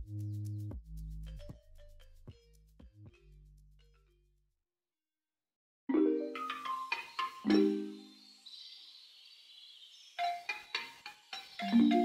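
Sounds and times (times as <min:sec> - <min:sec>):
mallet percussion notes: 0:01.2 - 0:04.2, 0:05.9 - 0:08.2, 0:10.2 - 0:12.0.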